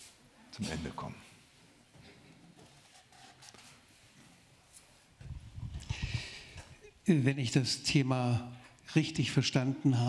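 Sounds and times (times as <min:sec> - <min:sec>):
microphone handling thumps: 0:05.2 - 0:06.8.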